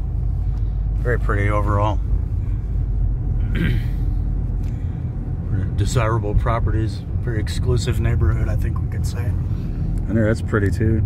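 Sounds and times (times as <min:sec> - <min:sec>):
car cabin road rumble: 0:00.0 - 0:11.0.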